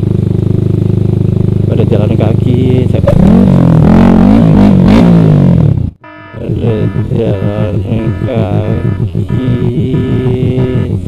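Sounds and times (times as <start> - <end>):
motorcycle engine revving: 0.0 - 11.0.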